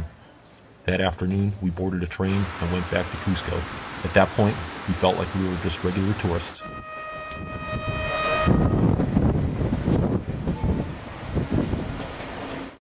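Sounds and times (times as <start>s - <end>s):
train horn blast: 6.6s - 9.6s
train rumbling and rattling: 7.1s - 12.8s.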